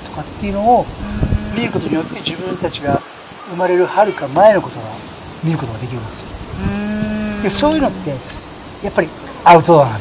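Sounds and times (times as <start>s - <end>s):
insects chirring: 0.0s - 10.0s
voices: 0.0s - 10.0s.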